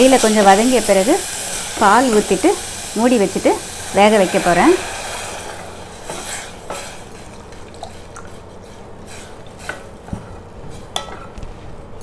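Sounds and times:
wooden spatula stirring in pot: 5.2s - 11.6s.

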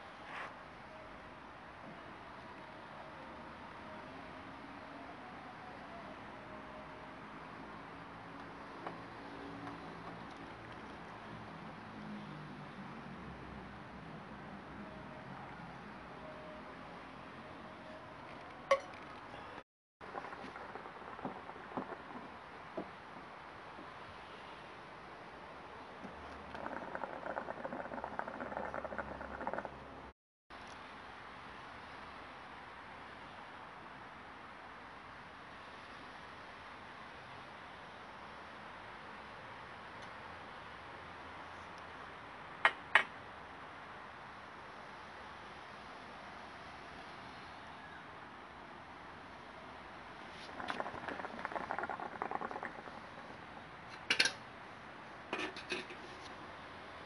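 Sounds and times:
hookah water bubbling: 10.2s - 11.3s, 18.7s - 23.0s, 26.1s - 29.8s, 50.4s - 53.7s.

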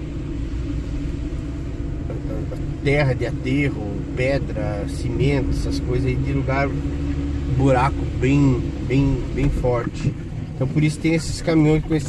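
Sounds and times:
vehicle engine and road rumble: 0.0s - 12.0s
man talking: 2.1s - 12.0s.

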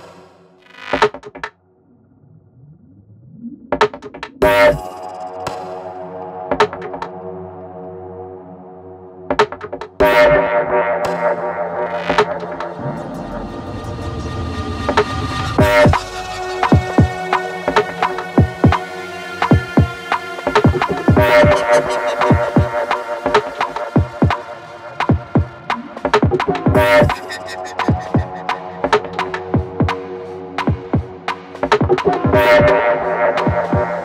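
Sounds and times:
low rising synth tone: 1.6s - 3.8s, 12.6s - 17.2s
electronic music: 3.4s - 8.2s, 9.1s - 34.0s.

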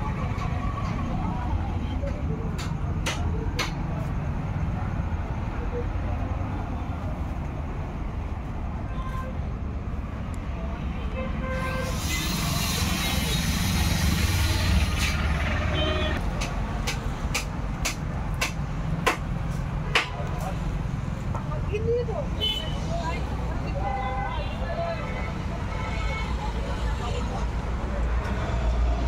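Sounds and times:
road traffic rumble: 0.0s - 29.0s
hiss: 11.6s - 15.2s.

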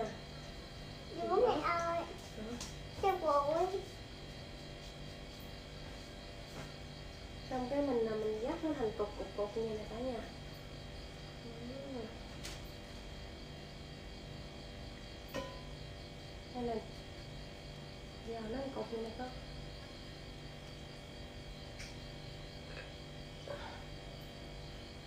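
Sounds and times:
electrical hum: 0.0s - 25.0s.

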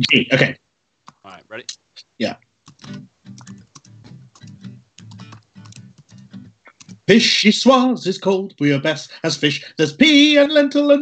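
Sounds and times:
person speaking: 0.0s - 5.8s, 6.7s - 11.0s
acoustic guitar playing: 2.7s - 7.2s.

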